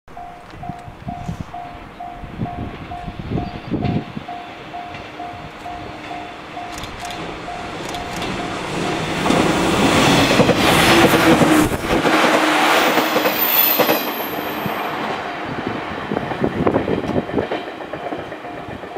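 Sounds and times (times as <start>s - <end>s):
electric train approaching: 0.1s - 18.9s.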